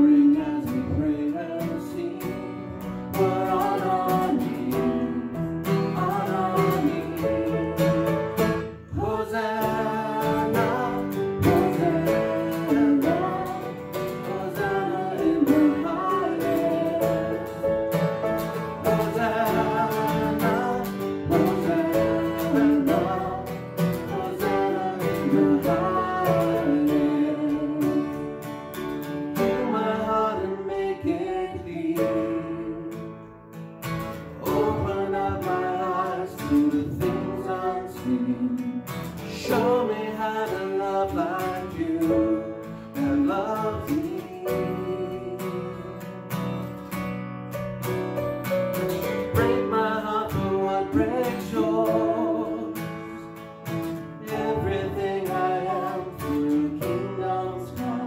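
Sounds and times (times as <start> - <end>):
woman singing: 0.0 - 8.2, 8.9 - 17.7, 18.9 - 28.4, 29.4 - 33.1, 34.4 - 46.0, 49.3 - 52.8, 54.2 - 58.0
acoustic guitar: 0.0 - 58.0
grand piano: 0.0 - 58.0.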